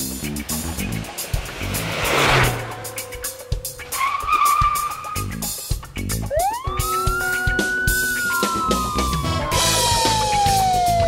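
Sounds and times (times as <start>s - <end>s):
intro music with drumbeat: 0.0s - 11.0s
wavering squeal: 2.4s - 5.4s, 6.3s - 11.0s
rising wail: 6.3s - 11.0s.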